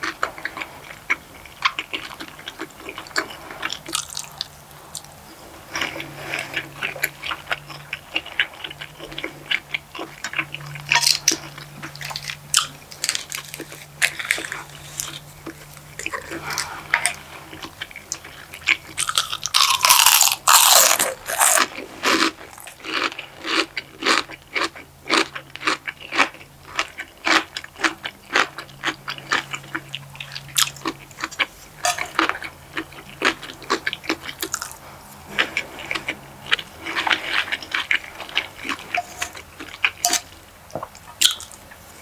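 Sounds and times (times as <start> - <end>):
chewing with wet mouth clicks: 0.0 - 21.8, 22.4 - 41.9
crunching bite: 1.6 - 5.1, 9.0 - 40.4.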